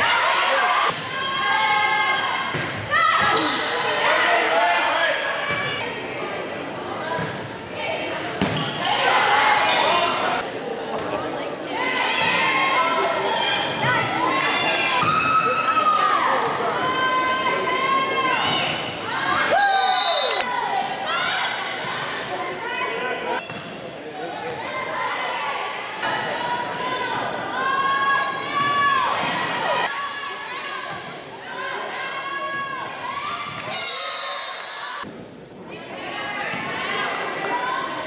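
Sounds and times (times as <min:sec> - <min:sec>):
shoes squeaking on court floor: 0:07.8 - 0:08.9, 0:28.1 - 0:28.7, 0:35.3 - 0:36.0.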